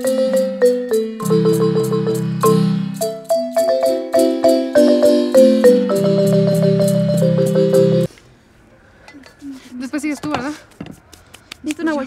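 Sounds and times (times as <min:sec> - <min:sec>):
women talking: 0:09.4 - 0:10.6, 0:11.6 - 0:12.0.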